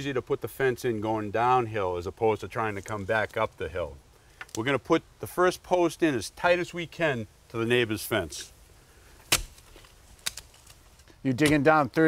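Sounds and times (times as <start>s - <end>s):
post-hole digger striking soil: 9.2s - 11.7s.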